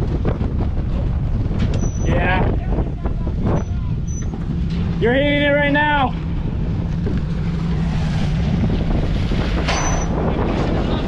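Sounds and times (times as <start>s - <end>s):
engine rumbling under load: 0.0s - 11.0s
trailer rattling and knocking: 0.0s - 11.0s.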